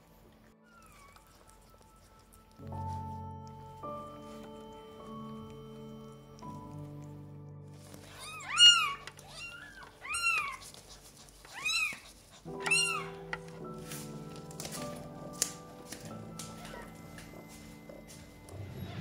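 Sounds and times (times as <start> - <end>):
background music: 0.0 - 11.2, 12.4 - 19.0
kitten meowing: 0.6 - 2.0, 7.9 - 10.8, 11.4 - 13.2, 16.4 - 17.1.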